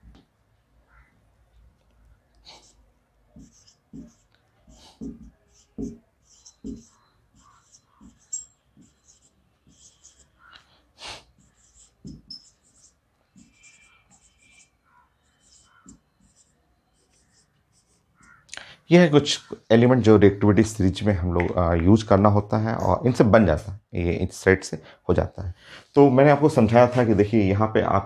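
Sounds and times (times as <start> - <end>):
marker writing on whiteboard: 2.0 - 18.5.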